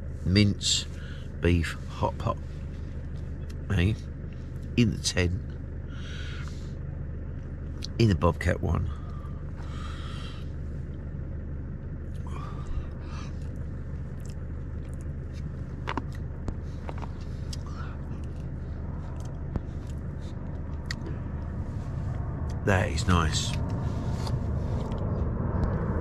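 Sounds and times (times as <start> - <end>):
low engine hum: 0.0 - 26.0.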